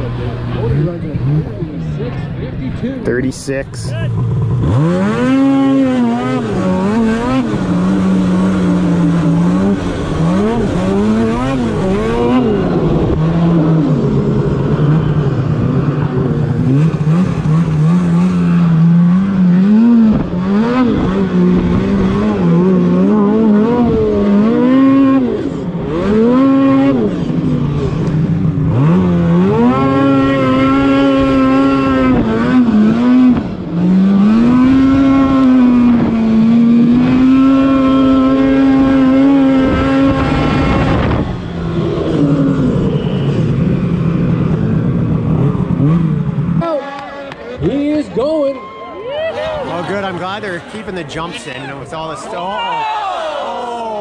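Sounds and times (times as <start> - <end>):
snowmobile engine revving: 0.0 - 54.0.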